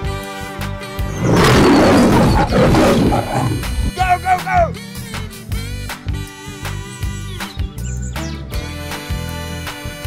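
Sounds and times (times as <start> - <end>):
lion roaring: 1.1 - 4.0.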